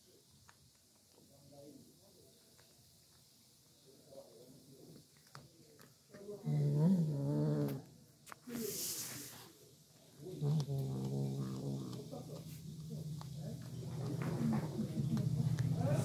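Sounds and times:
kitten growling: 0:05.8 - 0:08.0, 0:10.1 - 0:16.0.

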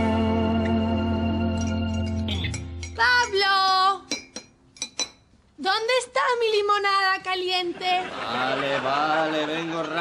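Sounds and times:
teaspoon clinking ceramic cups: 0:04.1 - 0:05.3.

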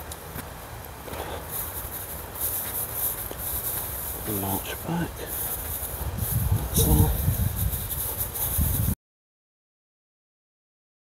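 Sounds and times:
hands rustling dry straw: 0:00.1 - 0:09.0.

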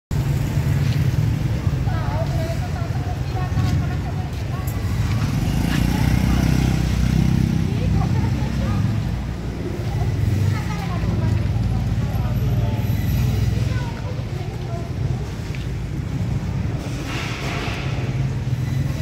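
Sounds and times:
traffic noise: 0:00.1 - 0:19.0
passers-by talking: 0:00.2 - 0:19.0.

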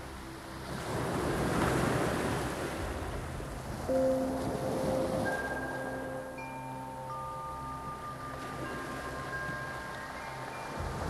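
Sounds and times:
sea waves breaking on shore: 0:00.0 - 0:11.0.

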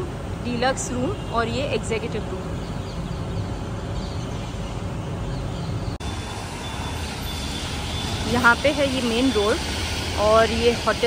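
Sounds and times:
traffic on a wet road: 0:06.0 - 0:11.0.

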